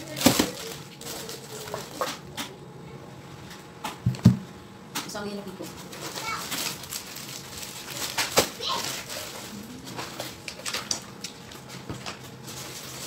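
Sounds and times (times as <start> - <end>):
fabric shopping bag rustling: 0.0 - 2.0, 5.9 - 10.4, 12.4 - 13.0
plastic-wrapped packets crinkling: 0.0 - 2.2, 5.8 - 13.0.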